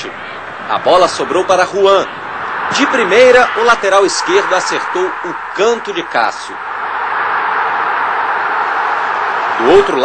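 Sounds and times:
stadium crowd cheering: 0.0 - 10.0.

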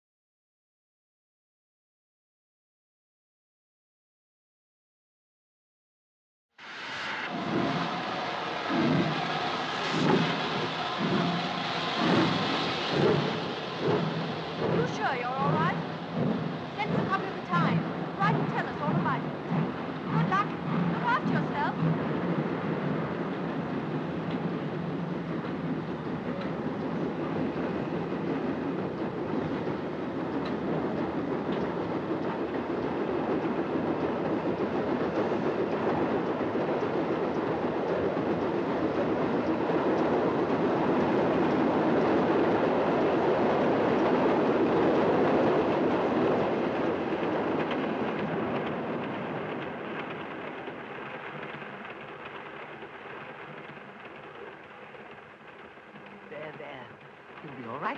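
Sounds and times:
steam train running: 6.6 - 57.9.

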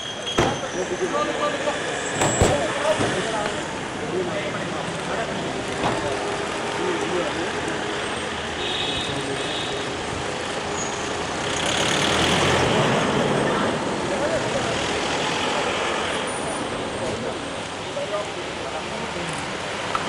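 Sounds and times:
voices: 0.0 - 10.1, 12.4 - 20.0.

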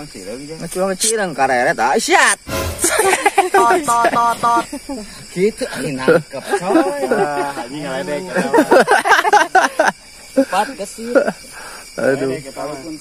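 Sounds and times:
men talking excitedly: 0.0 - 13.0.

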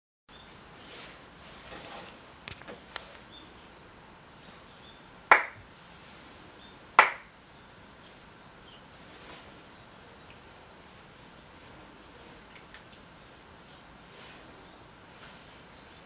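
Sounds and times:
sharp hand claps: 5.3 - 5.6, 7.0 - 7.3.

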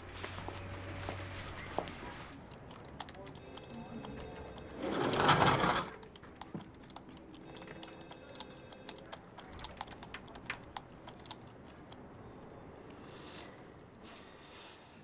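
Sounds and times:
typing on computer keyboard: 2.4 - 12.0.

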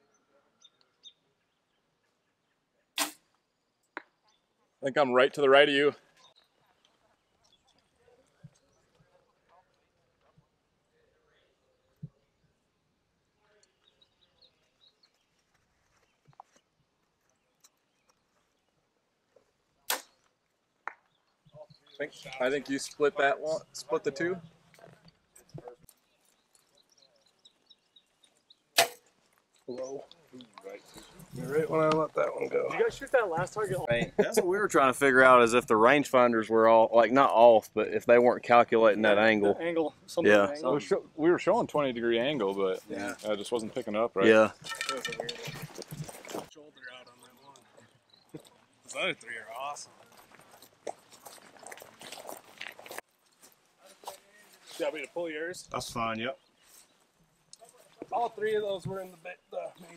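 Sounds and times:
bow string snap: 3.0 - 3.2, 19.9 - 20.1
arrow knock: 3.0 - 3.3, 19.9 - 20.2, 28.8 - 29.0.

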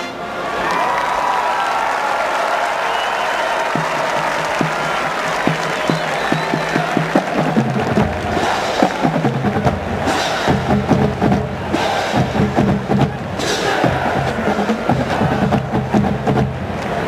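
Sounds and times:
crowd applauding and cheering: 0.0 - 17.0
drumline drum strokes: 3.5 - 17.0.

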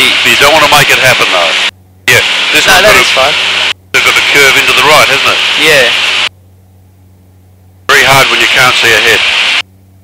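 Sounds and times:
voice over cockpit intercom: 4.0 - 6.0, 7.9 - 9.3.

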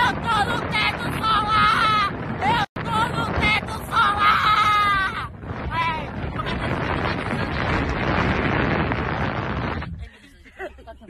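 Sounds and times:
wind buffeting microphone: 0.0 - 10.7.

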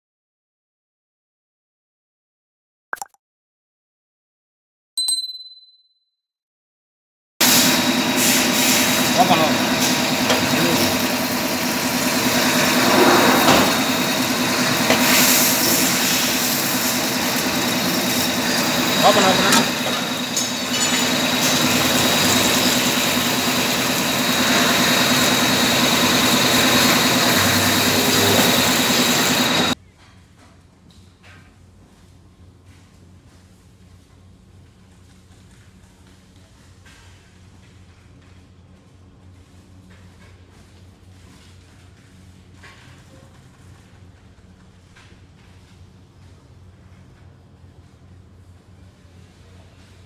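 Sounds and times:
notification ding: 5.0 - 5.9
lathe machining with coolant spraying: 7.4 - 29.8.

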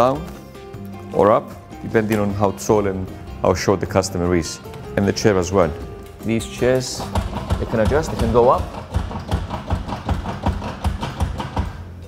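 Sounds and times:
barber chair pump knocking: 5.8 - 11.8.

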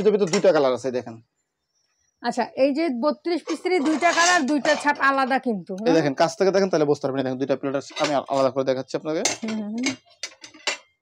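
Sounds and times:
ceramic plates and cups clinking: 0.0 - 0.7, 3.5 - 5.0, 7.8 - 8.6, 9.2 - 11.0
person talking: 3.2 - 6.4, 9.3 - 10.0.

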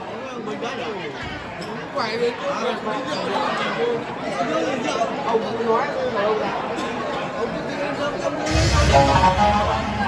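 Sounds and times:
babble of many voices: 0.0 - 10.0.

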